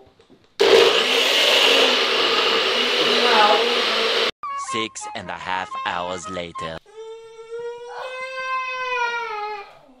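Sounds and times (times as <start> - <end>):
baby crying: 6.9 - 10.0.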